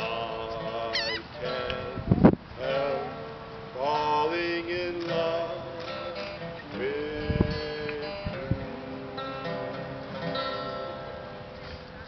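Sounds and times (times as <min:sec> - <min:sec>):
man singing: 0:00.0 - 0:10.2
acoustic guitar: 0:00.0 - 0:12.0.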